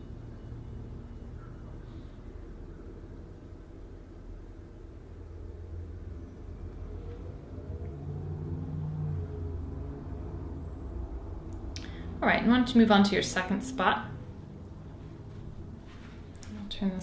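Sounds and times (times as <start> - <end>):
faint rising tone: 0.0 - 12.8
low background rumble: 0.0 - 17.0.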